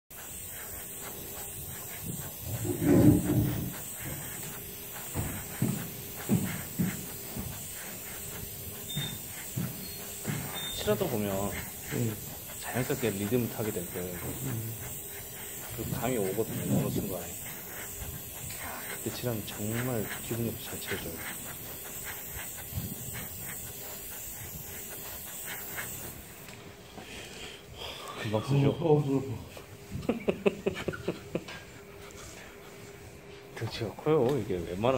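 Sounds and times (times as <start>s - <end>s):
airbrush hissing: 0.0s - 33.8s.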